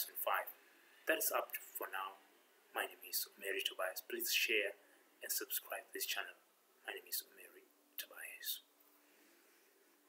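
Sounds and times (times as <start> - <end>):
person speaking: 0.0 - 8.7
low steady hum: 0.0 - 10.0.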